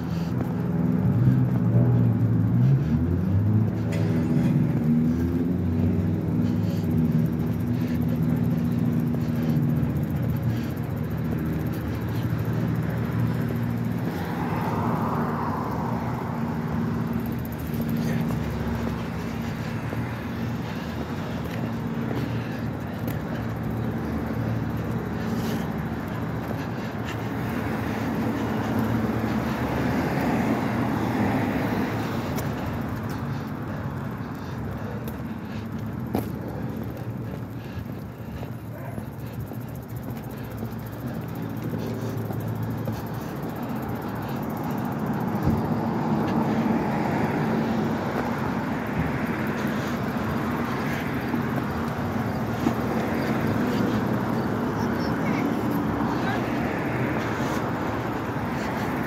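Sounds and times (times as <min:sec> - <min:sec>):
passing cars: 0:00.0 - 0:59.0
vehicle engine running close: 0:00.0 - 0:59.0.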